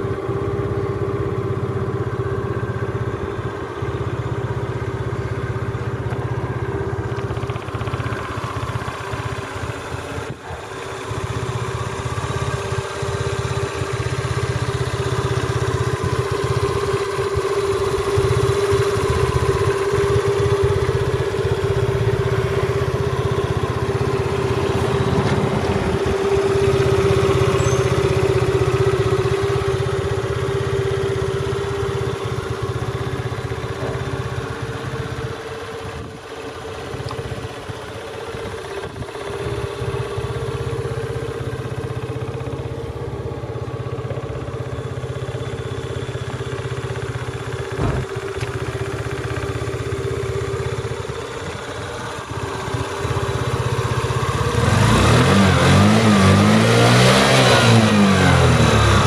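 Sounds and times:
scooter engine idling: 0:00.0 - 0:59.0.

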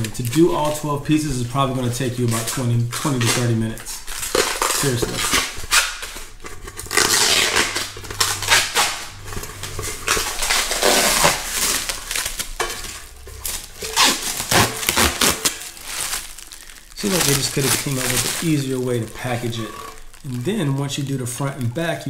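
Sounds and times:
plastic film crinkling: 0:00.0 - 0:22.0.

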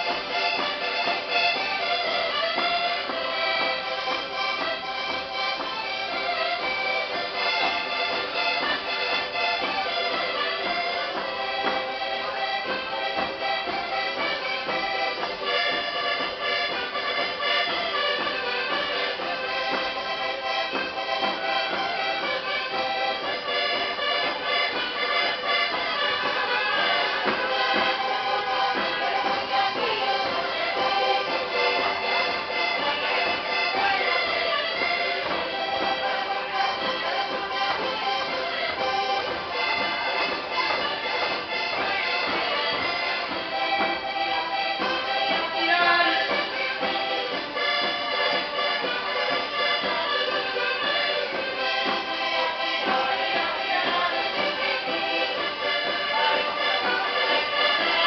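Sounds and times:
folk dance music with accordion: 0:00.0 - 0:58.0.

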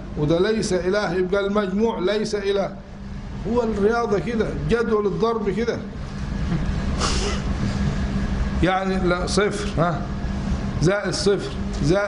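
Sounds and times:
constant hum: 0:00.0 - 0:12.0.

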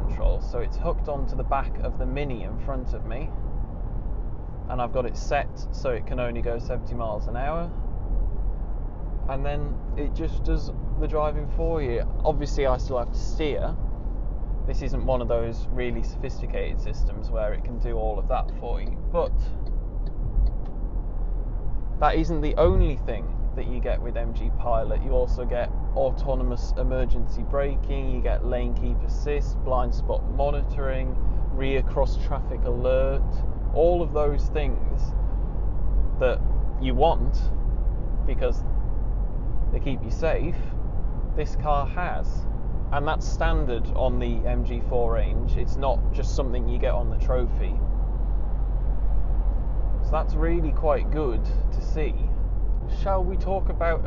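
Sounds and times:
road rumble inside car: 0:00.0 - 0:54.0
wind noise: 0:00.0 - 0:54.0.

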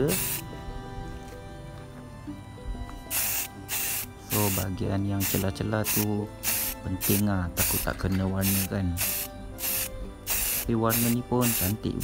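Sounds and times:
spray can hissing: 0:00.1 - 0:00.4, 0:03.1 - 0:12.0.

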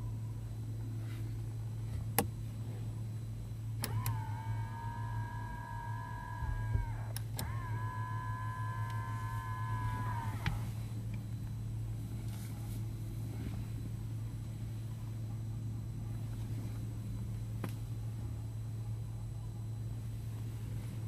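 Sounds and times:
power window motor whining: 0:03.8 - 0:11.2.

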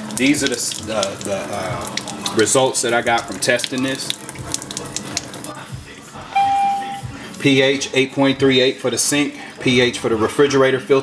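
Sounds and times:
electronic beep: 0:06.4 - 0:07.1.

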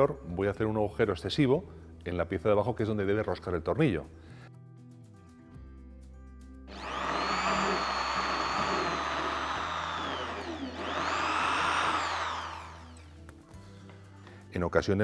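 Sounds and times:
soft background music: 0:00.0 - 0:15.0
electric drill boring into wood: 0:06.7 - 0:13.2.

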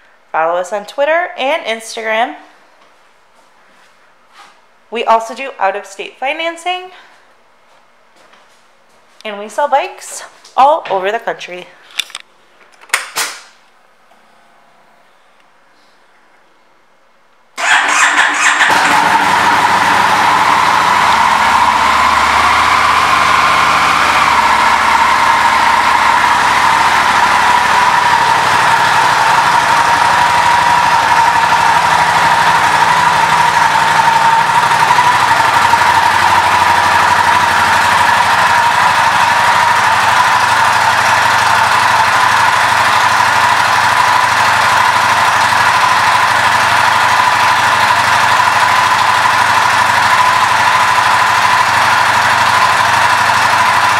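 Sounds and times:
constant whine: 0:17.6 - 0:53.9
motorcycle engine idling: 0:17.6 - 0:53.9.

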